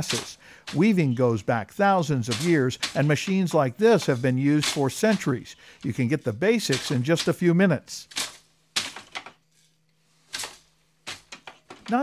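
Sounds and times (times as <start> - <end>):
wooden hand loom clacking: 0.0 - 1.2, 1.8 - 5.9, 6.6 - 7.4, 8.0 - 9.4, 10.2 - 12.0.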